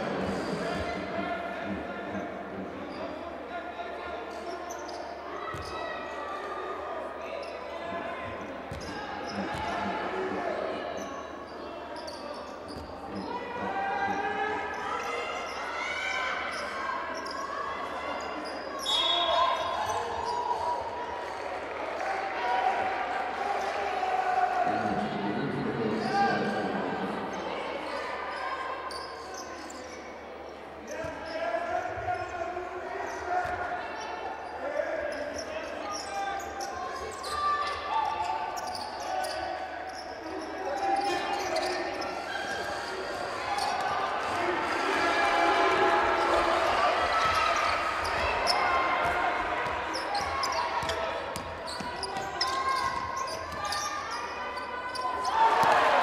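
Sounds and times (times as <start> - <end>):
crowd noise: 0.0 - 56.0.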